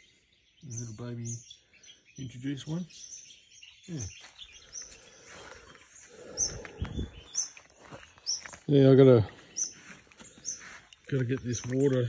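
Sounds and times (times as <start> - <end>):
small birds chirping: 0.0 - 12.0
rustling through garden plants: 4.0 - 12.0.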